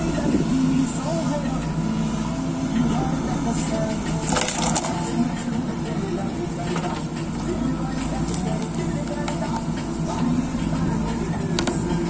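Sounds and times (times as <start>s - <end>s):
diesel engine under load: 0.0s - 12.0s.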